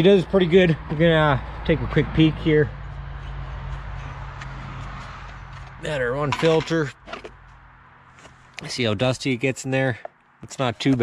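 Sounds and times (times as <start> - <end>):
engine running with low hum: 0.0 - 8.6.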